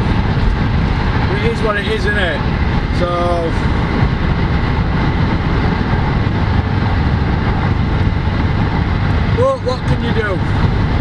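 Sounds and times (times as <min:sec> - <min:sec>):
car engine rumble: 0:00.0 - 0:11.0.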